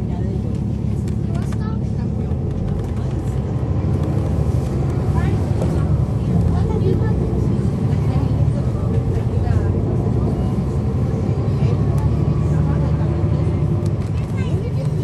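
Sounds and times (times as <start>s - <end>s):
diesel bus engine humming: 0.0s - 15.0s.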